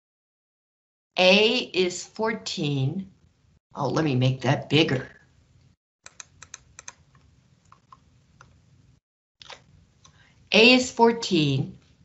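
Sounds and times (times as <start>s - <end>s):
computer mouse clicks: 6.0s - 8.6s.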